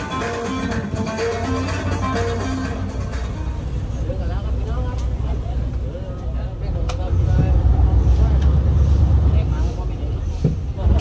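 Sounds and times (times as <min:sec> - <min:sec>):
boat engine rumble: 0:00.0 - 0:11.0
people talking indistinctly: 0:00.0 - 0:11.0.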